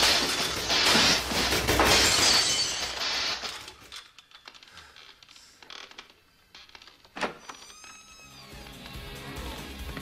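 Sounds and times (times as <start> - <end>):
loud shattering crash: 0.0 - 3.7.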